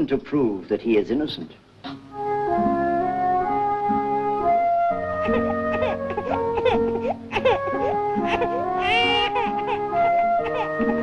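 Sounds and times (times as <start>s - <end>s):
music of held notes: 2.0s - 11.0s
baby crying: 4.9s - 11.0s.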